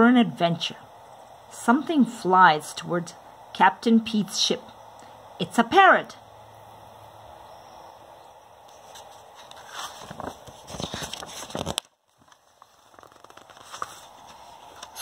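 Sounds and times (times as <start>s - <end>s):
faint handling noises: 8.6s - 15.0s
paper page being turned: 8.7s - 15.0s.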